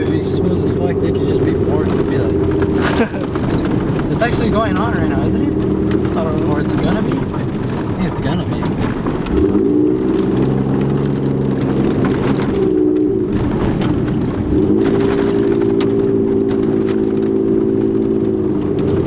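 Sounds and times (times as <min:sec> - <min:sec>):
pickup engine while driving: 0:00.0 - 0:19.0
tyres rumbling on dirt: 0:00.0 - 0:19.0.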